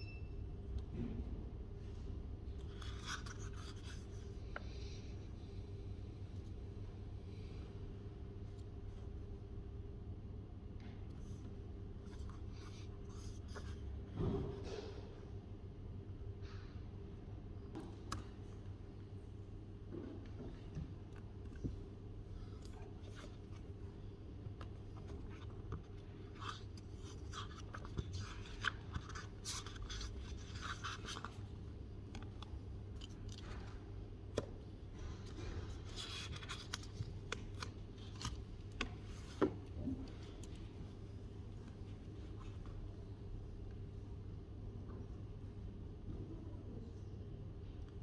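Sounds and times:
low room hum: 0.0 - 48.0
book pages rustling: 2.7 - 4.3, 12.0 - 13.8, 22.5 - 23.7, 24.5 - 31.6, 35.2 - 42.7.

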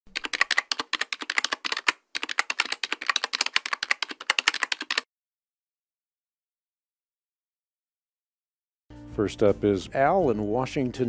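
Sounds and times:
rapid keyboard typing: 0.1 - 5.1.

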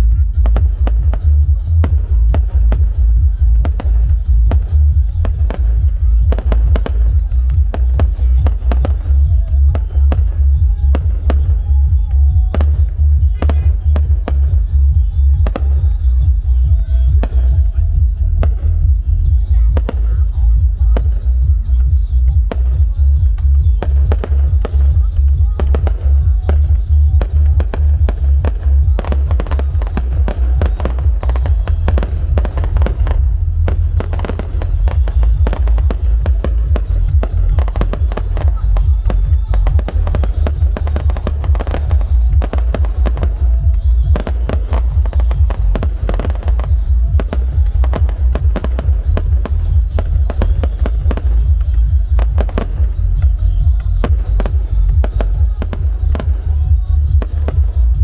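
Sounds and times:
fireworks bangs and crackles: 0.0 - 58.0
heavy low rumble: 0.0 - 58.0.

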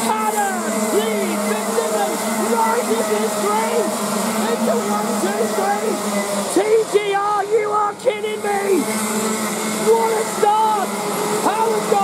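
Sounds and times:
kart engines buzzing: 0.0 - 12.0.

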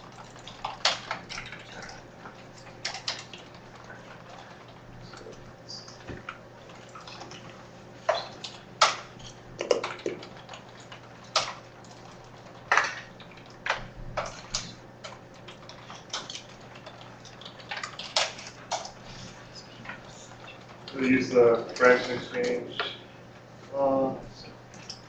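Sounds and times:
faint room hum: 0.0 - 25.0.

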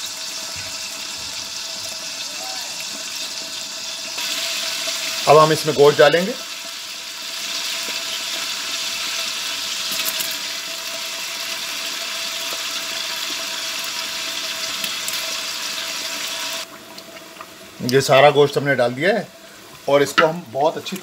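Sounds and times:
hot oil sizzling: 0.0 - 21.0.

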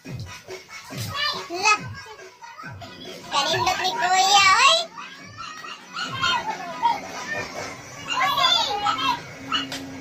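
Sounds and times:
young children chattering and calling: 0.8 - 10.0.

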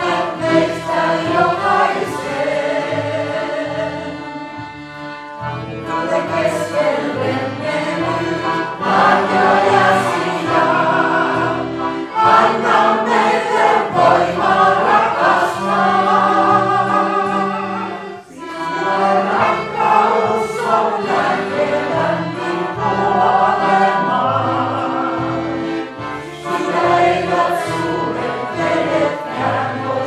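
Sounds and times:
group of voices singing: 0.0 - 4.6, 5.8 - 30.0.

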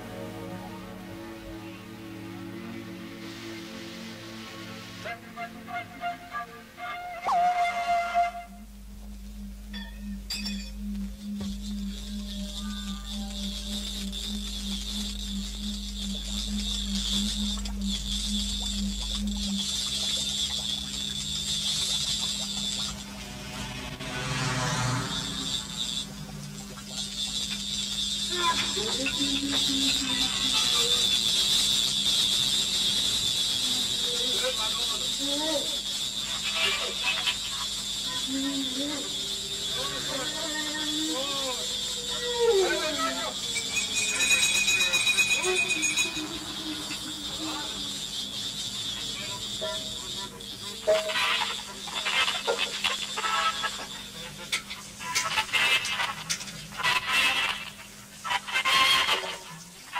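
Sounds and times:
low throbbing electronic tone: 0.0 - 5.1, 7.8 - 36.3
high crackling hiss: 0.0 - 59.9
low hum: 7.5 - 34.3
electronically treated voice gliding: 12.0 - 20.2, 28.3 - 31.1, 38.1 - 48.1.

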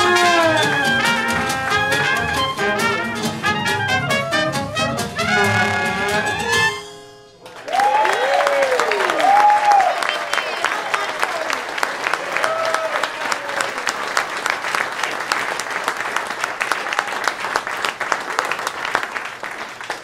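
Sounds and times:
audience applauding: 0.0 - 2.4, 7.4 - 20.0
high whooping cheers: 7.6 - 14.1.

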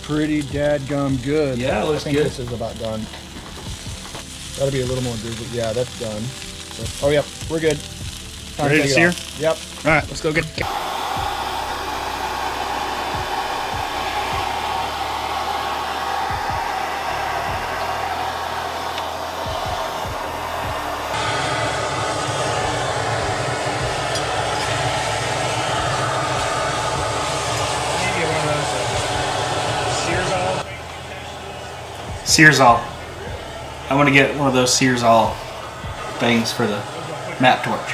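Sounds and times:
meat searing: 0.0 - 31.0
torch flame roaring: 10.6 - 30.7.

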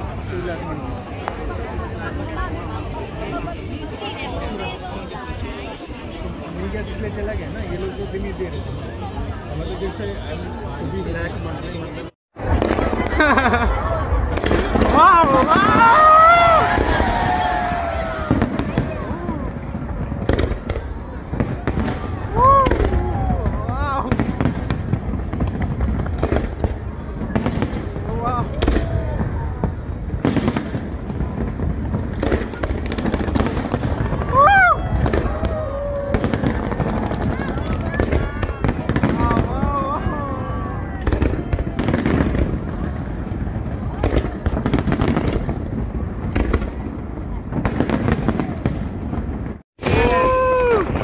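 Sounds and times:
low rumble of fireworks: 0.0 - 51.0
fireworks bangs: 12.4 - 51.0.

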